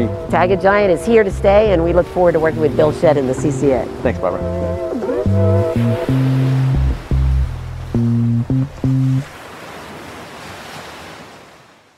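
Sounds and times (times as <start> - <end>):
held music chord: 0.0 - 9.3
ocean waves: 0.0 - 11.9.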